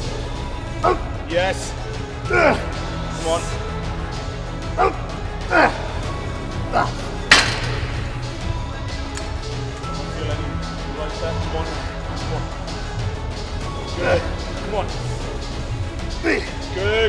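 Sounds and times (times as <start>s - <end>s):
sharp clank: 7.3s - 8.2s.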